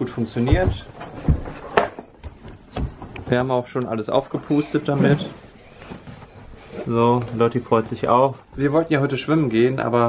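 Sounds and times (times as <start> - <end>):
handling knocks and rustles: 0.1 - 3.5.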